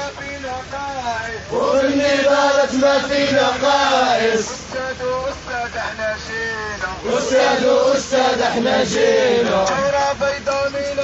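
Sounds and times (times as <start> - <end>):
protesters chanting: 0.0 - 11.0
man speaking through megaphone: 4.2 - 7.3.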